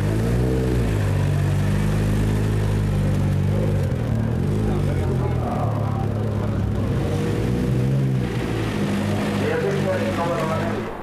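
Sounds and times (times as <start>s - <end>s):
car engine running at low revs: 0.0s - 11.0s
voices: 4.5s - 7.6s, 9.1s - 11.0s.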